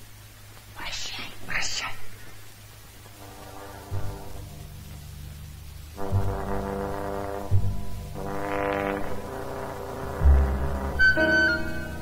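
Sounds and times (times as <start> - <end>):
low steady hum: 0.0 - 12.0
person whispering: 0.8 - 2.5.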